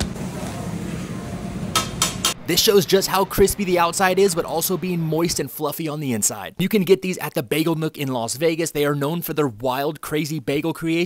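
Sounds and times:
low machine hum: 0.0s - 5.4s.

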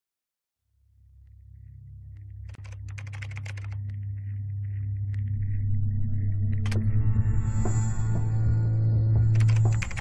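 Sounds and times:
computer keyboard typing: 2.5s - 3.8s, 9.3s - 10.0s.

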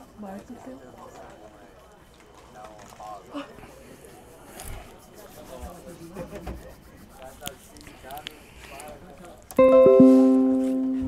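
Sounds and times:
musical chime chord: 9.6s - 11.0s.

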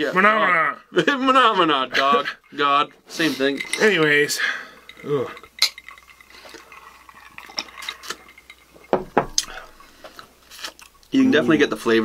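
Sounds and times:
glasses knocking on tabletop: 8.8s - 9.5s.

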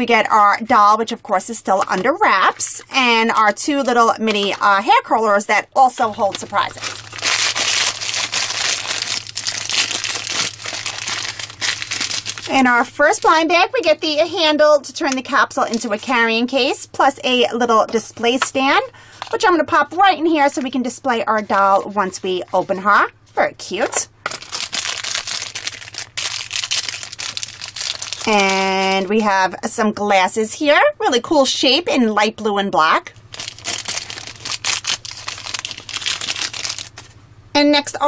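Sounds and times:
foil bag crinkling: 6.0s - 13.4s, 24.3s - 29.1s, 33.3s - 37.2s
plastic wrapper crumpling and tearing: 6.0s - 13.4s, 24.3s - 29.0s, 33.2s - 37.1s.

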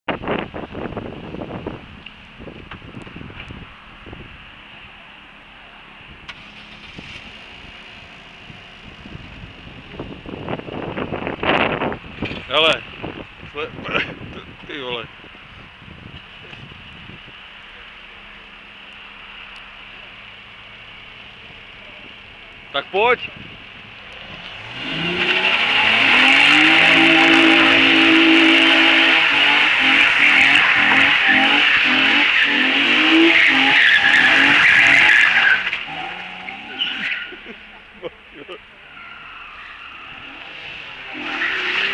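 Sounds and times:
car engine running: 0.1s - 41.9s
tyres screeching: 24.2s - 41.9s.

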